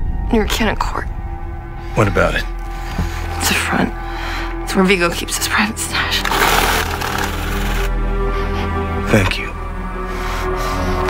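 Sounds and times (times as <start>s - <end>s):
low music drone: 0.0s - 11.0s.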